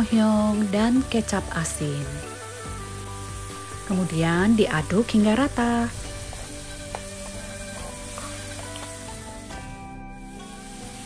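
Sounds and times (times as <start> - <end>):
meat sizzling in a wok: 0.0 - 11.0
soft background music: 0.0 - 11.0.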